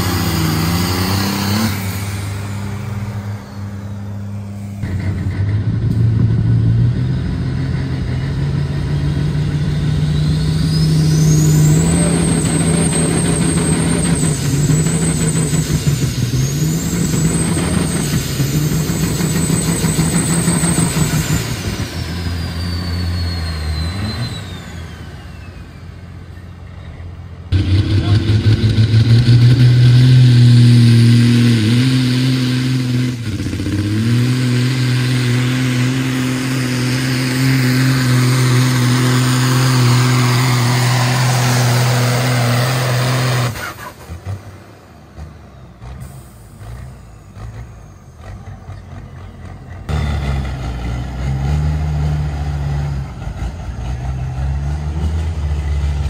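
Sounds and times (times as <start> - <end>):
diesel truck engine at full load: 0.0 - 56.0
turbocharger whistle: 6.0 - 26.5, 27.5 - 44.3.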